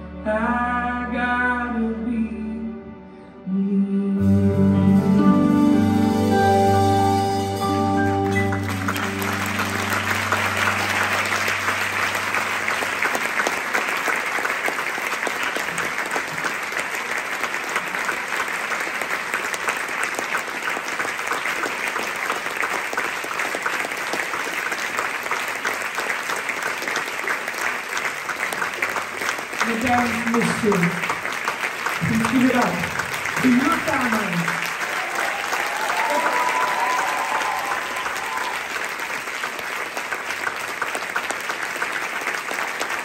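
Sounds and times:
audience applauding: 8.0 - 43.0.

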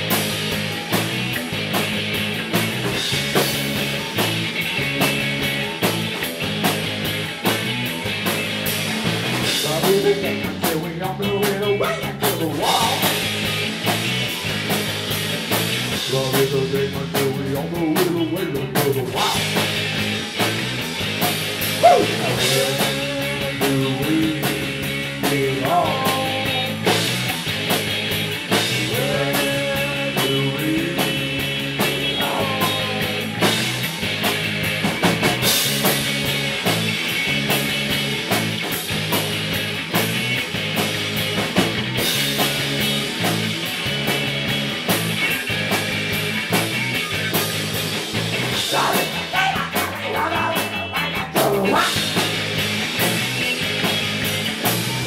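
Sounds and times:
bass guitar: 0.0 - 55.0
electric guitars: 0.0 - 55.0
steady drum beat: 0.0 - 55.0.

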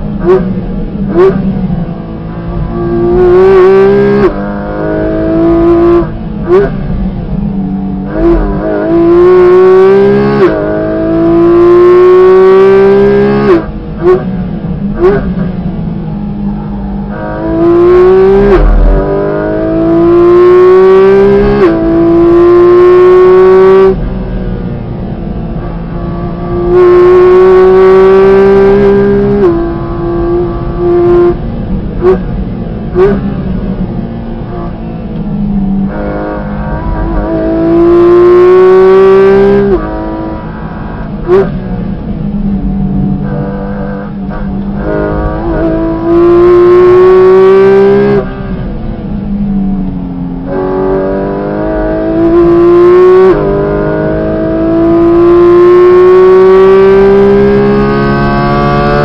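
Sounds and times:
car engine accelerating hard: 0.0 - 59.0
engine throttle blips: 13.5 - 20.5.

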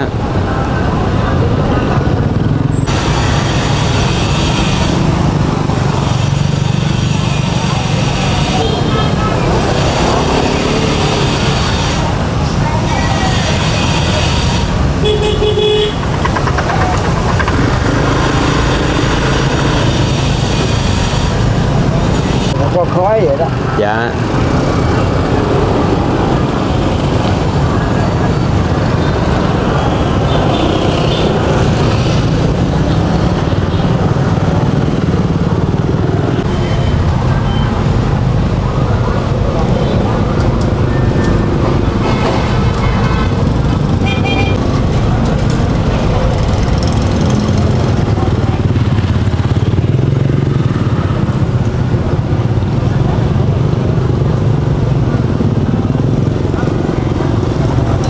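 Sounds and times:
motorbikes passing: 0.0 - 58.0
street traffic: 0.0 - 58.0.

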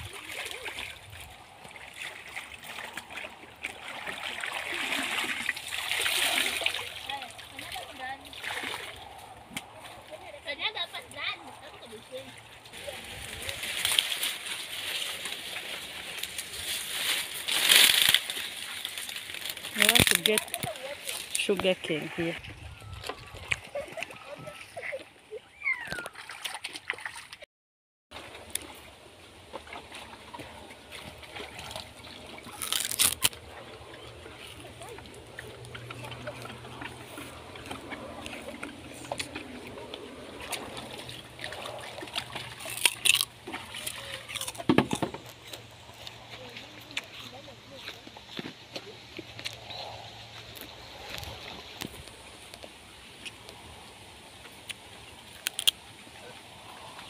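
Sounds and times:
water sloshing and splashing: 0.0 - 27.5, 28.1 - 57.0.

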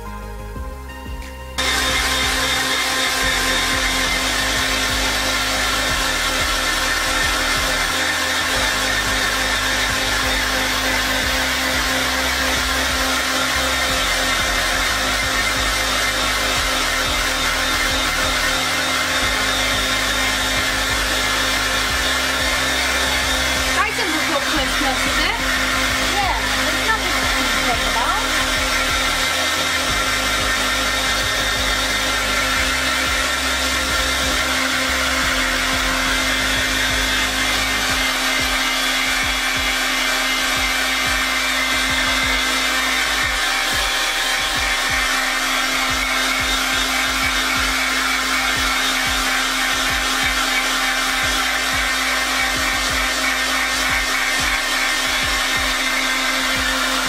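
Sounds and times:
hair dryer running: 0.0 - 57.0.

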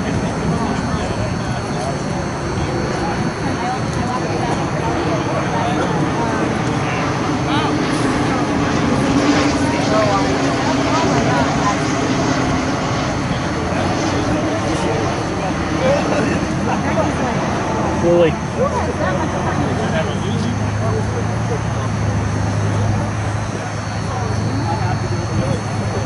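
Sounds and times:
steady drone: 0.0 - 26.0.

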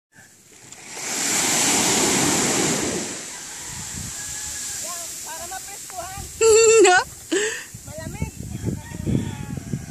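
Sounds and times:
wave washing onto sandy beach: 0.4 - 8.0.

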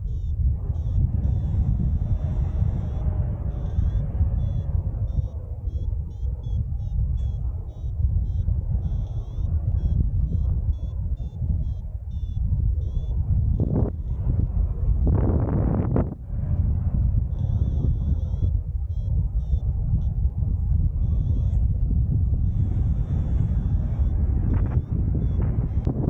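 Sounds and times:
variometer high beeps: 0.0 - 14.4, 17.3 - 26.0
wind buffeting microphone: 0.0 - 26.0.

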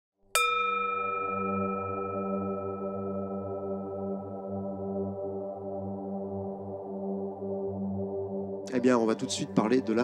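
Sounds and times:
singing bowl struck and ringing: 0.3 - 7.9.

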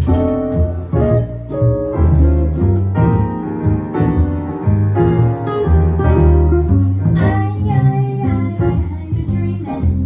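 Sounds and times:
guitar melody: 0.0 - 10.0
piano: 0.0 - 10.0
upright bass notes: 0.0 - 10.0.

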